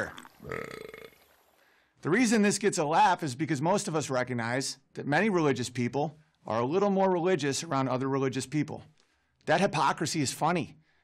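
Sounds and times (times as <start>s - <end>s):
man belching: 0.0s - 1.2s.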